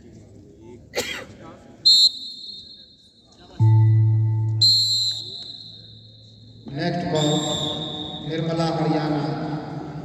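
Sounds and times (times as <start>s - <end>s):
referee's whistle: 1.8s - 3.3s, 4.2s - 8.5s
low buzzer tone: 3.6s - 6.6s.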